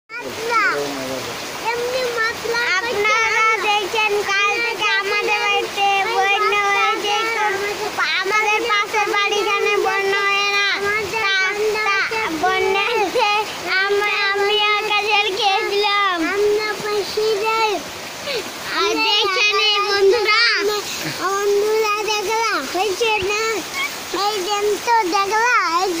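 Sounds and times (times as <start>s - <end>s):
heavy rain hissing: 0.1s - 26.0s.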